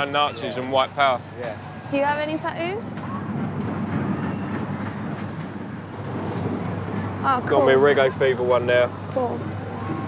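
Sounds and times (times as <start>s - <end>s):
low mechanical rumble: 0.8s - 10.0s.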